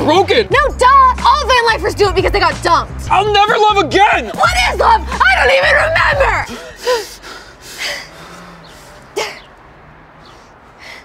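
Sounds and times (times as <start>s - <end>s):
woman shouting: 0.5s - 2.8s, 4.3s - 6.6s
sharp gasping breath: 6.5s - 9.5s, 10.2s - 11.0s.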